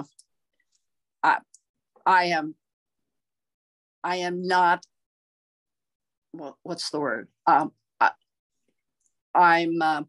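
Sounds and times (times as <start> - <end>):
woman speaking: 0.0 - 0.2, 1.2 - 2.6, 4.0 - 5.0, 6.3 - 8.2, 9.4 - 10.0.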